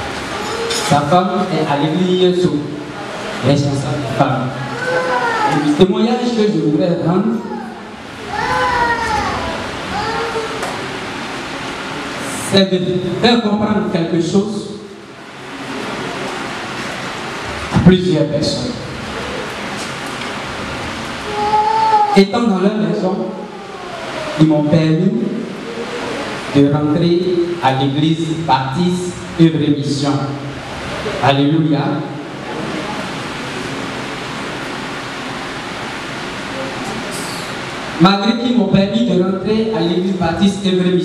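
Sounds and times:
room noise hiss: 0.0s - 41.0s
steady broadband rushing noise: 0.0s - 41.0s.

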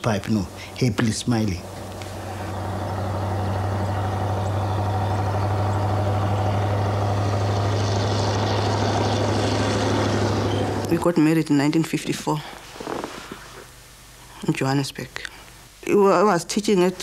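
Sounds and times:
even hiss: 0.0s - 4.6s
low mechanical hum: 0.0s - 17.0s.

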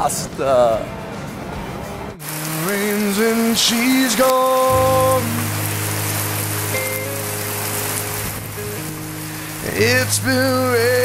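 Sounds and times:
rain pouring: 2.2s - 11.0s
music with long held notes: 2.3s - 11.0s.

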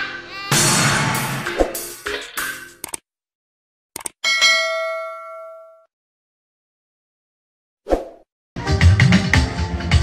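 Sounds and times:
quick clicks: 2.8s - 3.0s, 4.0s - 4.2s
notification bell ding: 4.2s - 5.9s.

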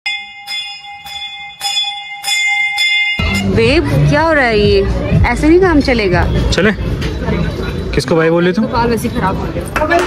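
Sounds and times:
temple bell ringing: 0.1s - 4.2s.

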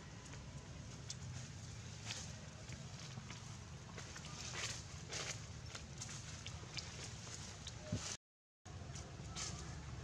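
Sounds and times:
rustling dry leaves: 0.7s - 8.2s, 8.9s - 10.0s.

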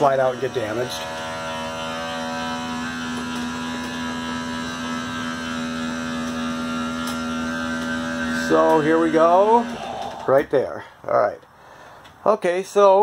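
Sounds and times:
electric motor buzzing hum: 0.0s - 10.4s.

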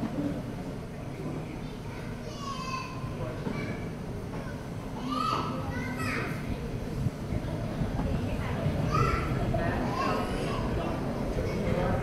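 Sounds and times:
children chattering: 0.0s - 12.0s
child calling out: 5.0s - 6.4s.

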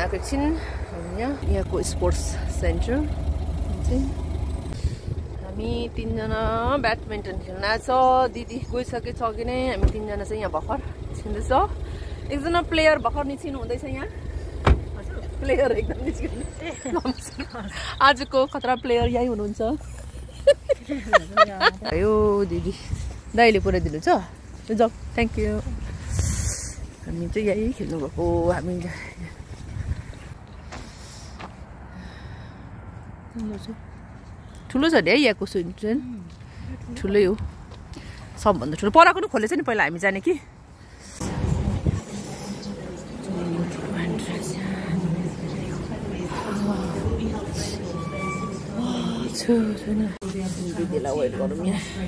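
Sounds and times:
wind buffeting microphone: 0.0s - 17.5s, 25.0s - 30.5s, 41.2s - 47.6s
low outdoor rumble: 0.0s - 34.1s, 35.0s - 52.0s.

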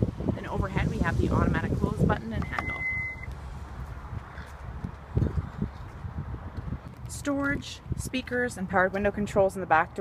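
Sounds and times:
low rumble on microphone: 0.0s - 7.2s
electronic beep: 2.4s - 3.3s.

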